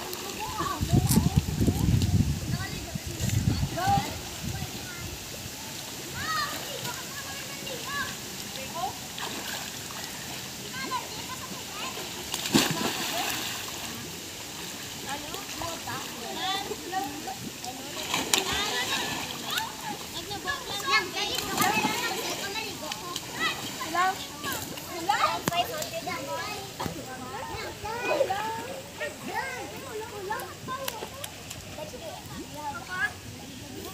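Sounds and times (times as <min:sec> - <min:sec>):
faint children's voices: 0:00.0 - 0:33.9
pool water splashing: 0:00.0 - 0:33.9.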